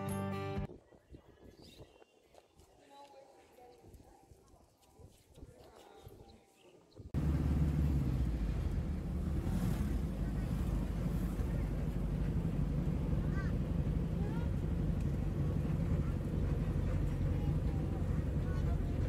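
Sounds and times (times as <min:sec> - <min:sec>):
vehicle engine and road rumble: 0:07.1 - 0:19.0.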